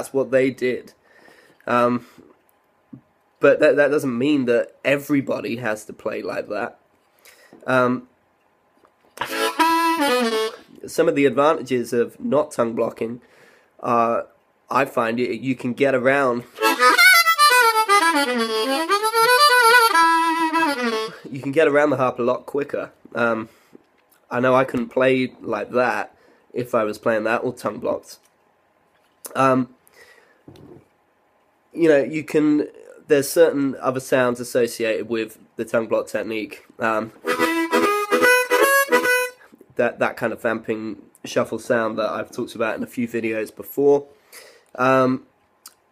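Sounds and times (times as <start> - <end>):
blues harmonica: 9.2 - 10.8, 16.5 - 21.3, 37.2 - 39.6.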